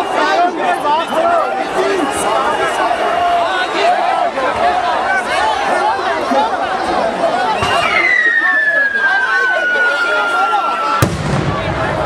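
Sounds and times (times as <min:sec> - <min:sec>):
crowd voices: 0:00.0 - 0:12.0
whistle gliding down in pitch: 0:07.6 - 0:11.0
sharp explosive bang: 0:11.0 - 0:12.0.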